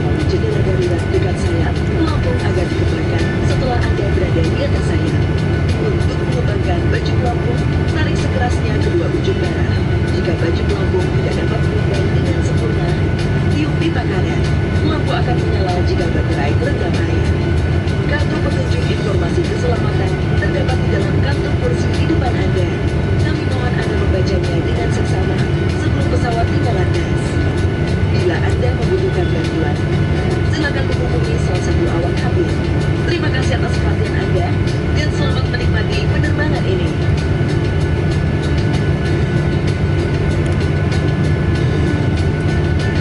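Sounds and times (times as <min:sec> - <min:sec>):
airplane cabin rumble: 0:00.0 - 0:43.0.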